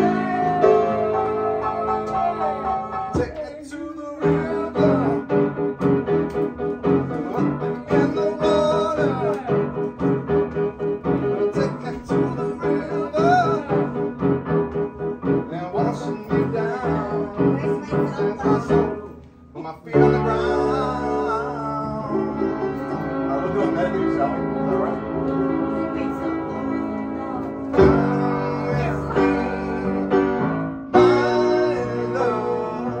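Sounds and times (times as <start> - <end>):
upright piano chords: 0.0 - 33.0.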